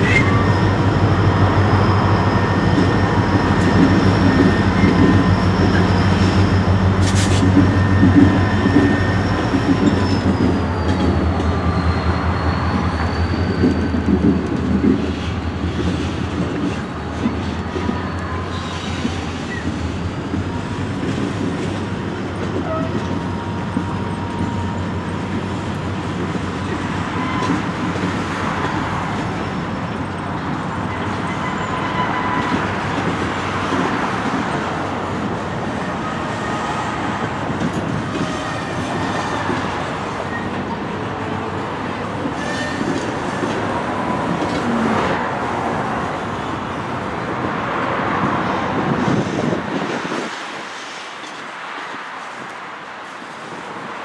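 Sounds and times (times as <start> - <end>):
freight train rumbling past: 0.0 - 54.0.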